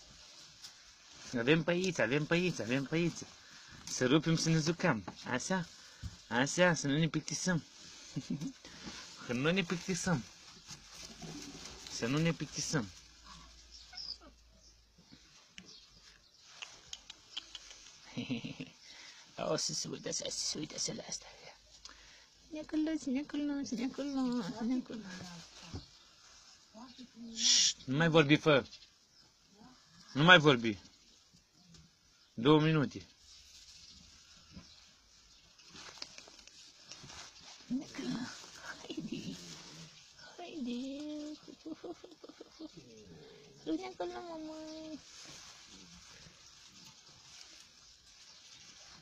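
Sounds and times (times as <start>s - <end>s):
rustling of straw: 0.0s - 49.0s
soft puppy sounds: 13.1s - 18.7s, 35.6s - 49.0s.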